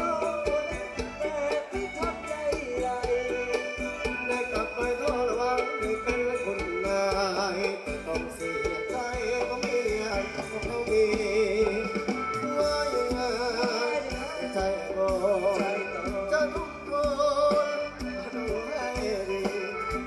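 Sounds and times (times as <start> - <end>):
live folk dance band: 0.0 - 20.0
steady percussion beat: 0.0 - 20.0.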